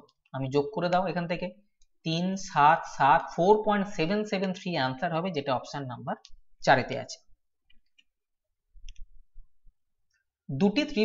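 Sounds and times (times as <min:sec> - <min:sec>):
faint mouse clicks: 0:07.6 - 0:08.2, 0:08.8 - 0:09.2.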